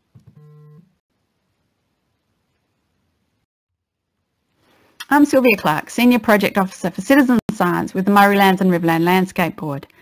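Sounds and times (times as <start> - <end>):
faint background hiss: 0.1 - 5.5.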